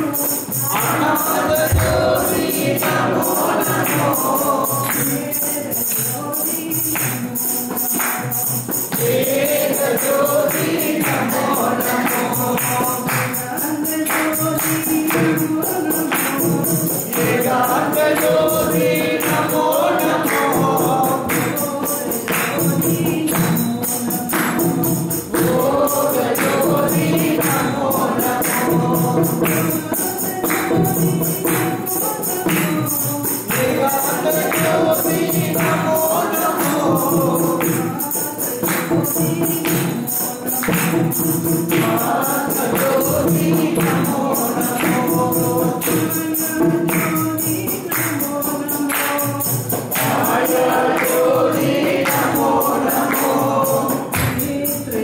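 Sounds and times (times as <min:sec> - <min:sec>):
group singing devotional song: 0:00.0 - 0:55.0
jingling hand percussion: 0:00.0 - 0:55.0.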